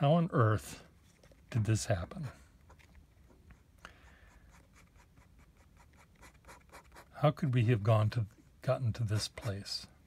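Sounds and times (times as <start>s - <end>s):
pen nib scratching on paper: 2.7s - 7.2s.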